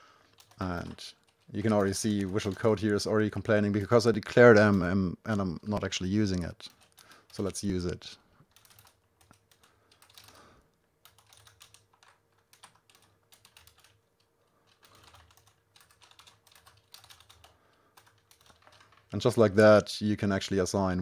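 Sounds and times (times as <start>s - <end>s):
faint steady hum: 0.0s - 21.0s
typing on a keyboard: 0.2s - 4.8s, 6.6s - 7.6s, 8.4s - 19.3s.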